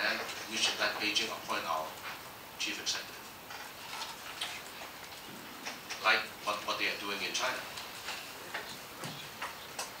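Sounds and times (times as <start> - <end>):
room noise: 0.0 - 10.0
faint clicks and taps: 0.1 - 2.2, 7.7 - 10.0.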